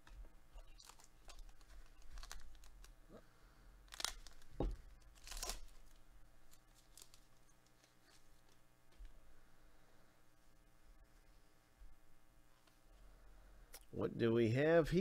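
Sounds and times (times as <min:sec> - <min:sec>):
foil wrapper tearing and crinkling: 0:00.6 - 0:03.0, 0:03.9 - 0:07.3.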